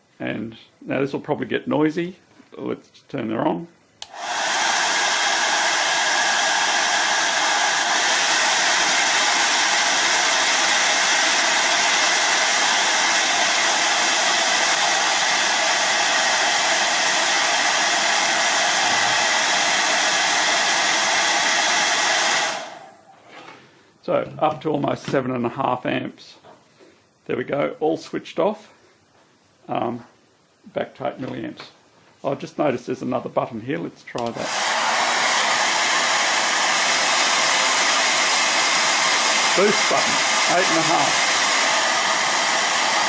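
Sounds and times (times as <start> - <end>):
hair dryer running: 4.0 - 23.1, 34.2 - 43.0.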